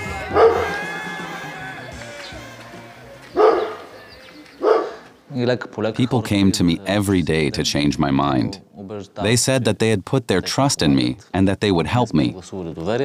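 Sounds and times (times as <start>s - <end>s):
dog barking: 0.3s - 0.8s, 3.4s - 3.9s, 4.6s - 5.1s
man speaking: 5.3s - 13.0s.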